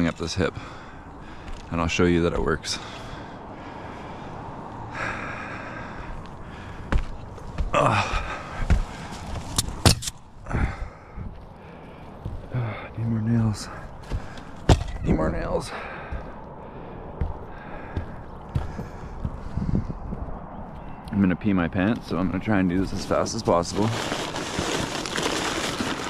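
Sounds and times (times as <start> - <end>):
heavy breathing: 0.4 - 1.7, 2.6 - 9.5, 10.4 - 20.2
person grunting: 7.7 - 8.6
tools clattering on a roof: 14.1 - 15.2.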